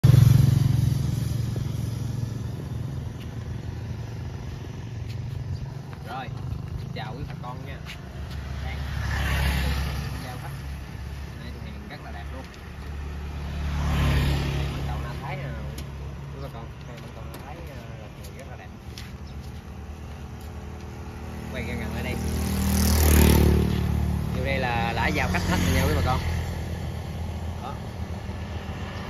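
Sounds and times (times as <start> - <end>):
road vehicle passing by: 0.0 - 29.0.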